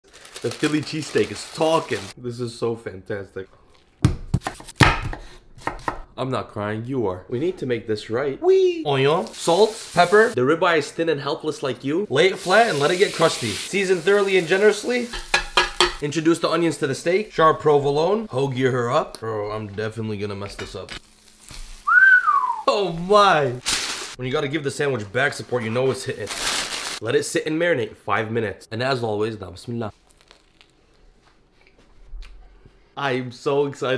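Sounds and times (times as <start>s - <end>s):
knife chopping on wooden board: 4.0s - 6.0s
crunchy bread being chewed: 30.0s - 31.0s.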